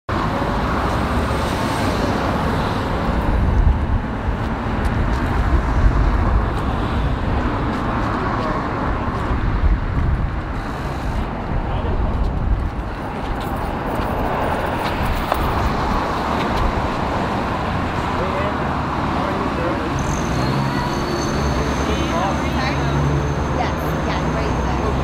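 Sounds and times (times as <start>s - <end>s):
passing cars rumbling: 0.1s - 25.0s.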